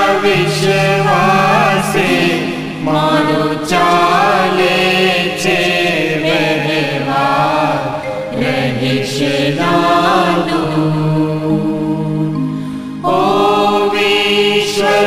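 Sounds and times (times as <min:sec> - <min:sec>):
person singing a devotional hymn: 0:00.0 - 0:15.0.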